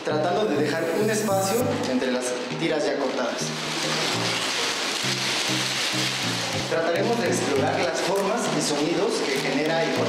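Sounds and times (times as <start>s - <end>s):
background music with low notes: 0.0s - 10.0s
paper rustling and crumpling: 3.1s - 10.0s.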